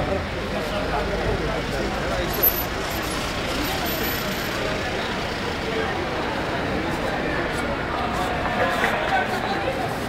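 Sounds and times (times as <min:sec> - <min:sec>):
cars passing close by: 0:00.0 - 0:10.0
crowd voices: 0:00.0 - 0:10.0.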